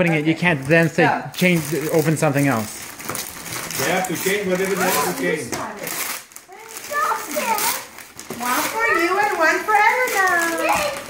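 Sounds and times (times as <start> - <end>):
young children exclaiming: 6.5 - 8.0, 10.1 - 11.0.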